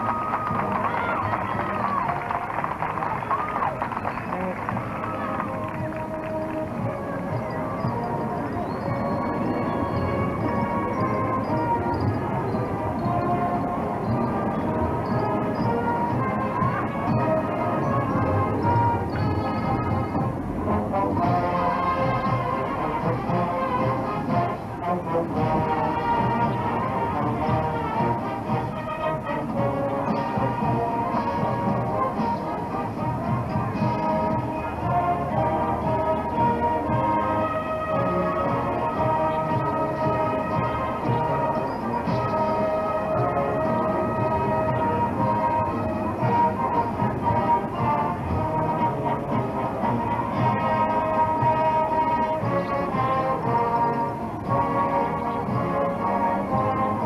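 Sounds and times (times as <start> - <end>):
marching band playing a march: 0.0 - 57.0.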